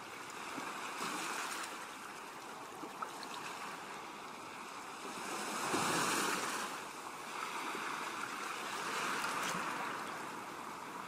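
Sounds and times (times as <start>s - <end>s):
ocean waves: 0.0s - 11.0s.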